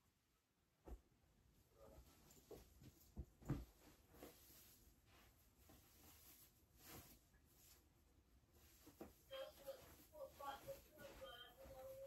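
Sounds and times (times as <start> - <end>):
clothes rustling: 1.8 - 12.0.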